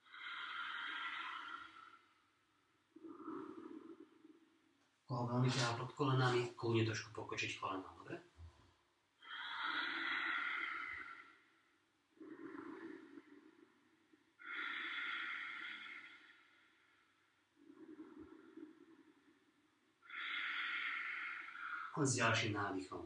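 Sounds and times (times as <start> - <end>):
man breathing deeply: 14.4 - 17.1, 20.1 - 21.9.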